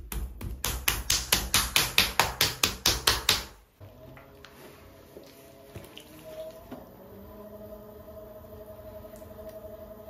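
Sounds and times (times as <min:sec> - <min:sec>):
hands slapping wet clay: 0:00.0 - 0:03.6.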